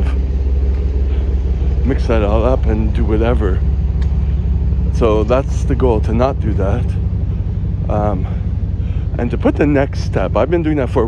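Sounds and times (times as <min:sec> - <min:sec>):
loud low rumble: 0:00.0 - 0:11.0
man's voice: 0:01.8 - 0:03.7, 0:04.9 - 0:07.0, 0:07.9 - 0:08.4, 0:09.1 - 0:11.0.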